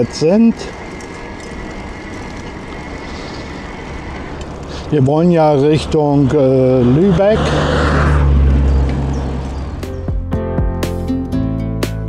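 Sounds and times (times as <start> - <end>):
wind and tyre noise: 0.0 - 10.2.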